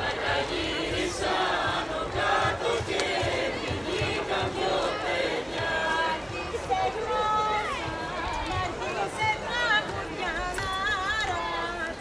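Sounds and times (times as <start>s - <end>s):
group of voices singing: 0.0s - 12.0s.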